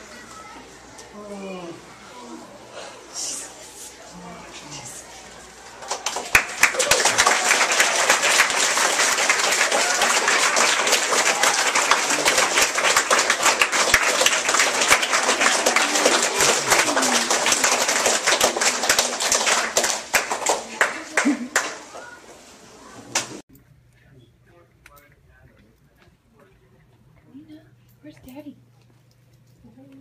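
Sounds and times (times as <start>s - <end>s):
crowd applauding: 5.4s - 22.2s.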